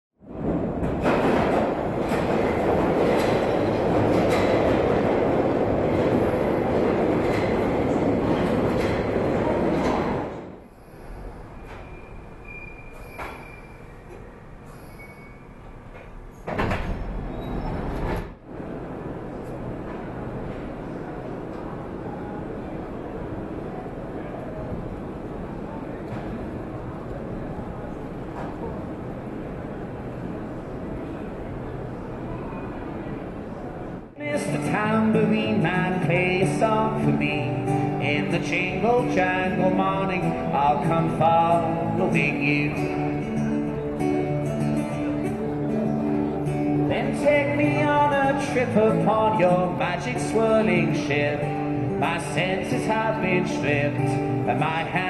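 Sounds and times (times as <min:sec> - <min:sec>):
underground train running noise: 0:00.2 - 0:55.0.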